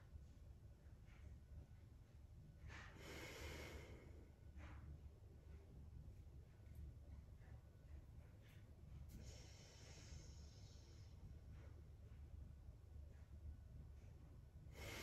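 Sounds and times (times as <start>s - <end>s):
breathing through the nose: 2.7s - 4.3s, 14.7s - 15.0s.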